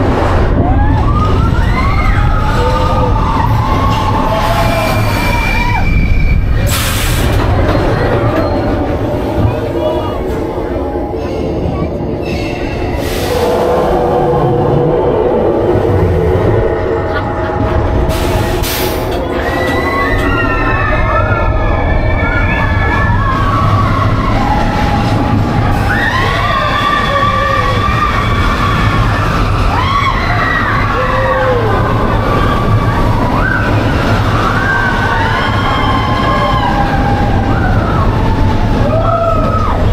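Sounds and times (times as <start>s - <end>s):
roller coaster wheels rumbling on rail: 0.0s - 39.9s
riders screaming: 0.7s - 6.6s, 19.3s - 39.9s.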